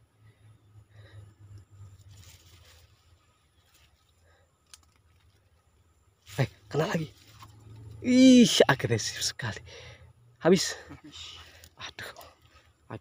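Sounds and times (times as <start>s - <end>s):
faint soft rustling: 1.8s - 7.8s.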